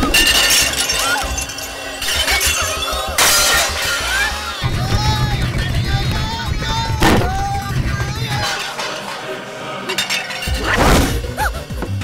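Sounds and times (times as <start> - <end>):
crash of something shattering: 0.0 - 4.6
comic background music: 0.0 - 12.0.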